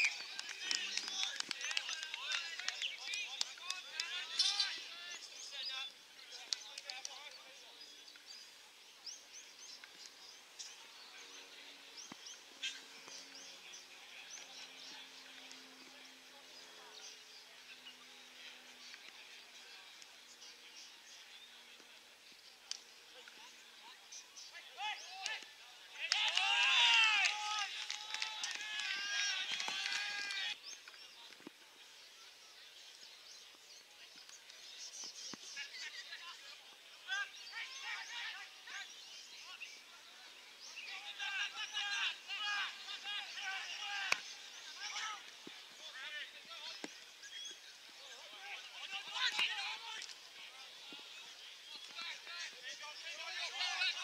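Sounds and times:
players shouting and cheering: 0:00.0 - 0:07.6, 0:23.2 - 0:30.6, 0:35.6 - 0:40.3, 0:40.9 - 0:54.0
distant players shouting: 0:24.5 - 0:30.6, 0:40.9 - 0:46.8, 0:48.2 - 0:51.1
loud high-pitched shout: 0:26.0 - 0:30.6.

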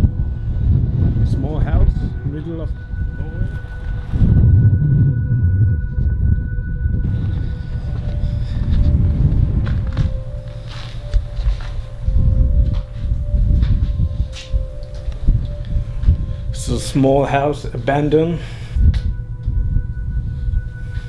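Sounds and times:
eerie drone music: 0:00.0 - 0:21.0
loud low rumbling noise: 0:00.0 - 0:21.0.

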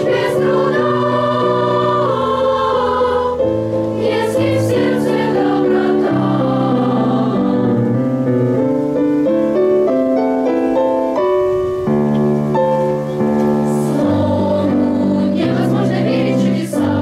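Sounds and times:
children's choir singing: 0:00.0 - 0:08.4, 0:13.1 - 0:17.0.

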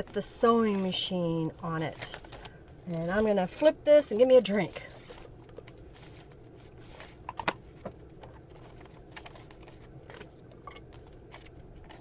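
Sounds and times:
room hum: 0:00.0 - 0:12.0
paper rustling and tapping: 0:05.0 - 0:12.0.

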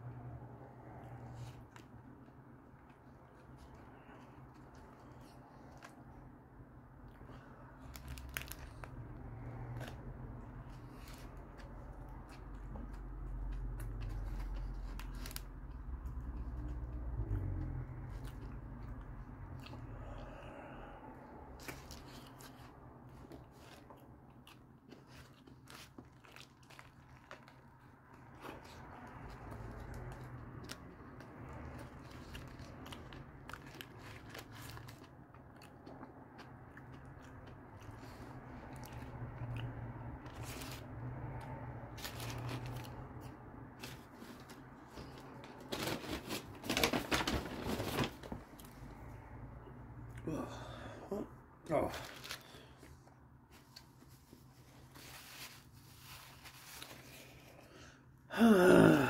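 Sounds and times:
paper wrapper crinkling: 0:07.9 - 0:08.9, 0:43.8 - 0:48.6.

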